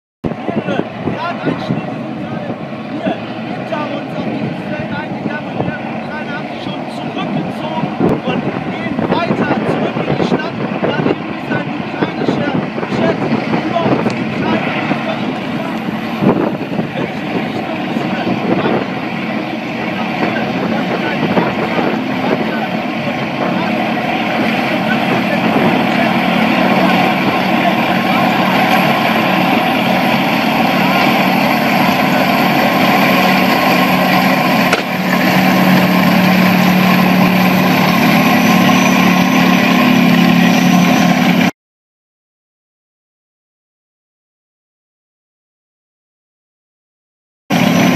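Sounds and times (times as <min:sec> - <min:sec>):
tank engines and tracks: 0:00.2 - 0:41.5, 0:47.5 - 0:47.9
people's voices: 0:00.4 - 0:40.7.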